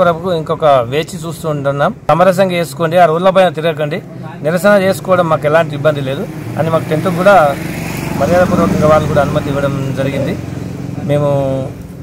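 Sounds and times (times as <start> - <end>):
man speaking: 0.0 - 11.8.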